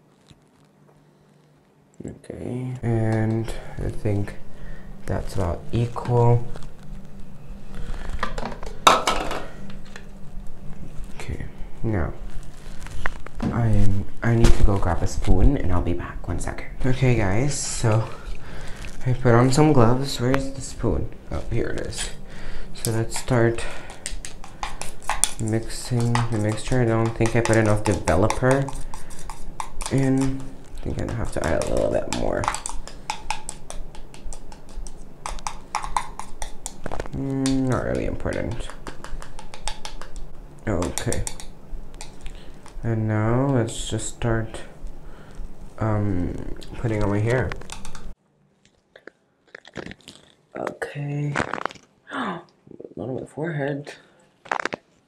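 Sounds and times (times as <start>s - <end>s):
objects being handled and set down: 8.0s - 10.1s
spoon scraping a small bowl: 24.0s - 30.3s.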